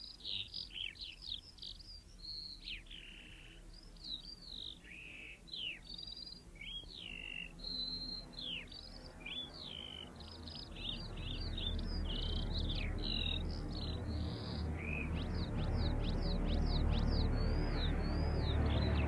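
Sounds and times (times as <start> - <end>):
birds chirping and singing: 0.0 - 19.0.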